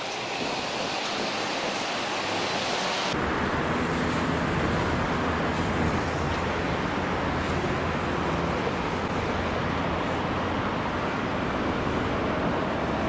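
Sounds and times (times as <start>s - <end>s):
wind rushing: 0.0s - 13.0s.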